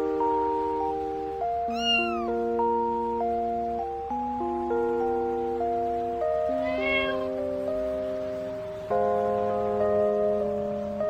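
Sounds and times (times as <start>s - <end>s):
music of held notes: 0.0s - 11.0s
cat meowing: 1.7s - 2.4s, 6.5s - 7.4s.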